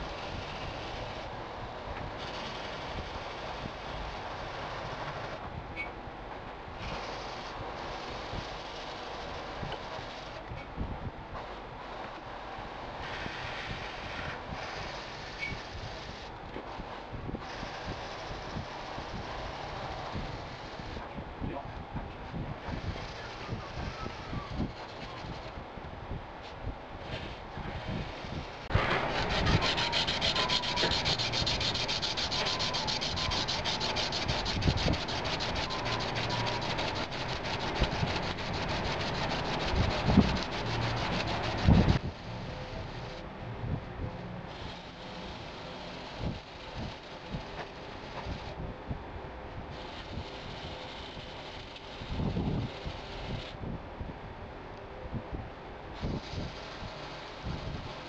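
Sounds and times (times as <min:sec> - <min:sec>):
hand-sanding wood: 0:28.7 - 0:42.0.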